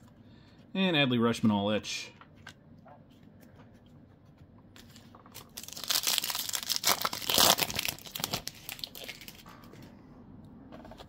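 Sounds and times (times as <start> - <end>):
foil wrapper crinkling: 4.8 - 9.4.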